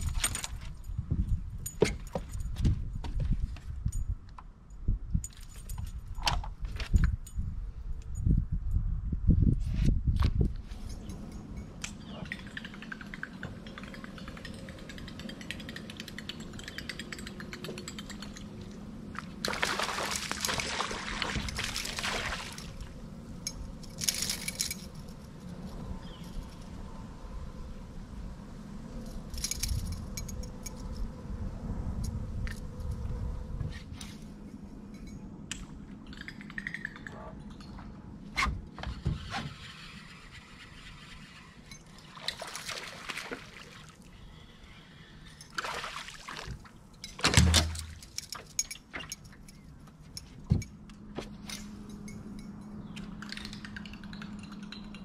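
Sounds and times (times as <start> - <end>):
water splashing around boat: 17.0 - 23.0, 41.9 - 44.1, 45.5 - 49.5.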